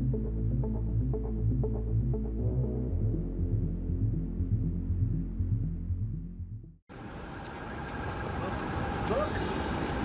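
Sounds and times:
traffic rumble: 0:06.9 - 0:10.0.

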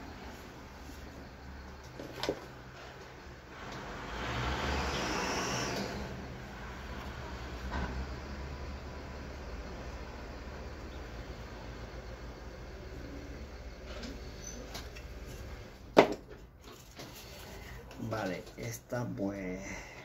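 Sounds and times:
steady low hum: 0:04.8 - 0:20.0.

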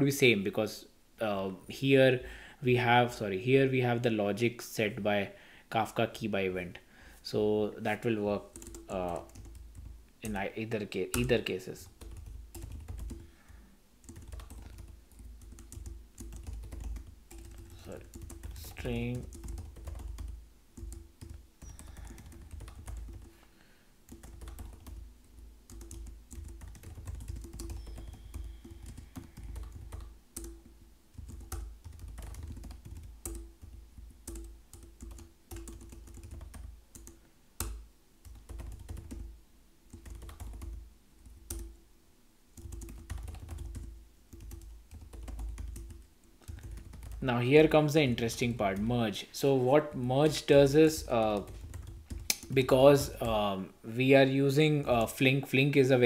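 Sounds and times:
typing on computer keyboard: 0:08.5 - 0:10.4, 0:11.1 - 0:13.3, 0:14.0 - 0:23.3, 0:24.1 - 0:39.3, 0:39.9 - 0:41.7, 0:42.6 - 0:47.2, 0:51.4 - 0:52.5.

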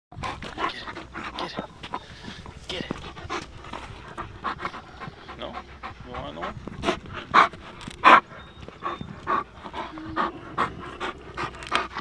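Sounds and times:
dog panting: 0:00.1 - 0:12.0.

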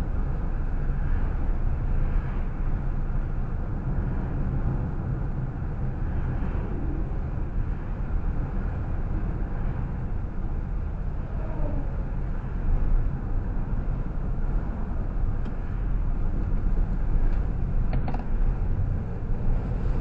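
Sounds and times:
car cabin road rumble: 0:00.0 - 0:20.0.

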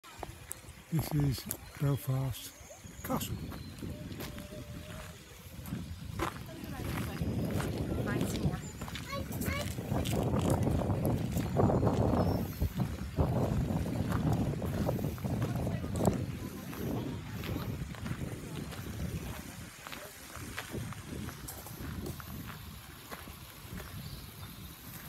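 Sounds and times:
indistinct voices: 0:00.9 - 0:05.8
wind buffeting microphone: 0:02.8 - 0:25.0.

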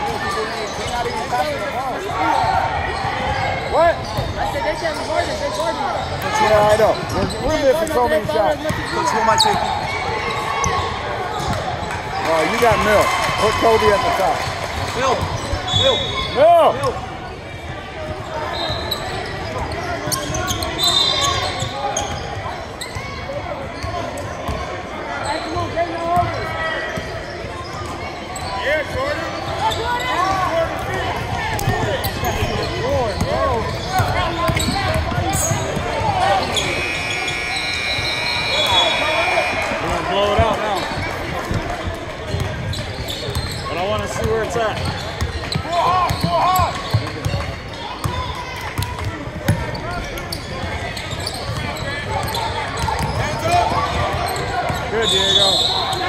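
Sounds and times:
voices in a hall: 0:00.0 - 0:56.0.

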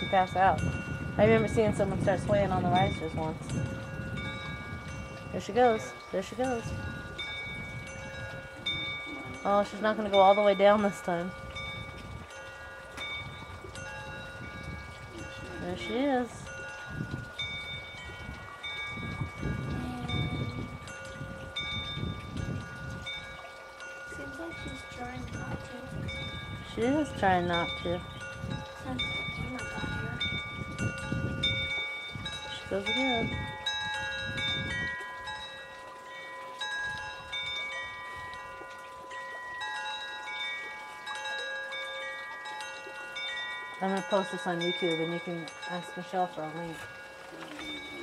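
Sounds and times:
metal chimes ringing: 0:00.0 - 0:48.0.

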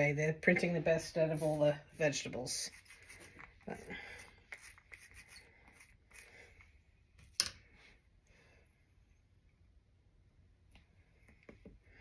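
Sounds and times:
dabbing and rubbing: 0:00.5 - 0:06.9.

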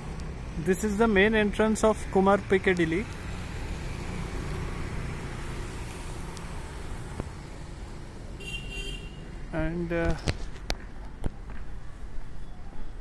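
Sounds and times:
traffic rumble: 0:00.0 - 0:13.0.

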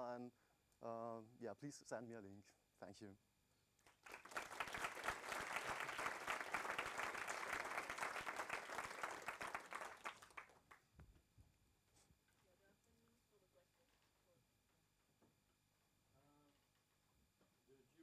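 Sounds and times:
audience applause: 0:03.9 - 0:10.8.

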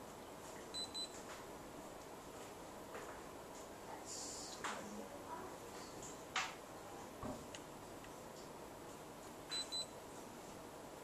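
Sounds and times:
high electronic camera beeps: 0:09.5 - 0:10.0.

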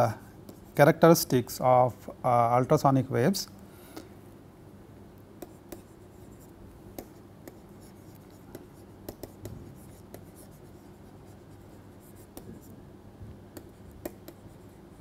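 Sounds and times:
stylus tapping and scratching screen: 0:05.4 - 0:12.7, 0:13.5 - 0:15.0.

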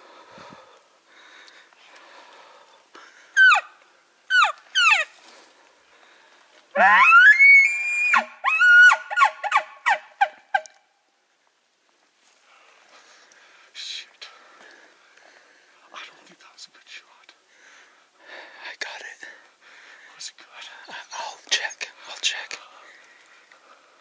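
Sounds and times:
elk bugle call: 0:06.8 - 0:07.6.

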